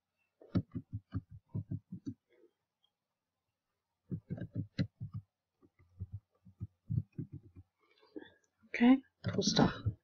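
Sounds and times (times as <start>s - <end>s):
muffled keyboard typing: 0.5s - 2.3s, 4.1s - 7.8s.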